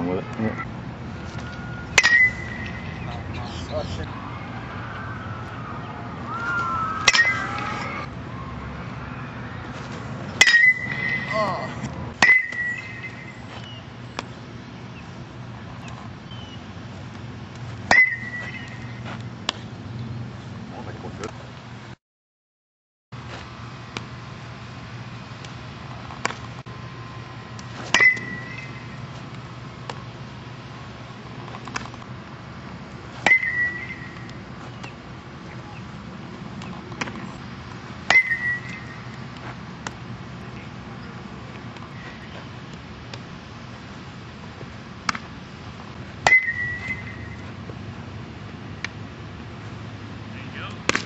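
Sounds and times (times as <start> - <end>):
steady low hum: 0.0 - 22.0, 23.2 - 51.0
metal bat pinging ball: 1.9 - 3.0, 7.0 - 8.0, 10.4 - 11.5, 12.2 - 13.4, 17.9 - 19.0, 27.9 - 29.0, 33.2 - 35.0, 38.1 - 39.2, 46.2 - 47.4.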